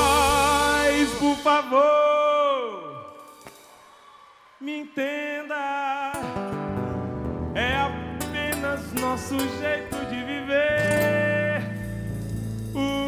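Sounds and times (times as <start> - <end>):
live band playing: 0.0 - 1.8
man singing: 0.0 - 3.2, 4.6 - 6.5, 7.5 - 13.0.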